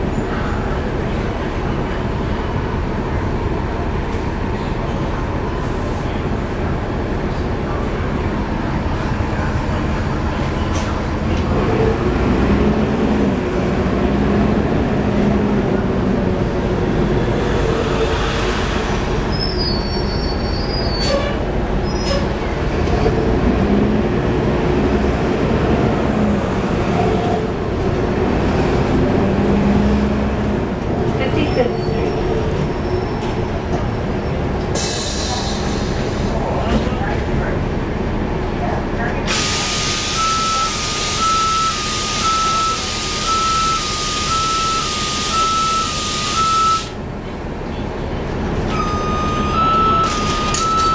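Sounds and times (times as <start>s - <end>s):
bus diesel engine: 0.0s - 50.9s
road noise: 0.0s - 50.9s.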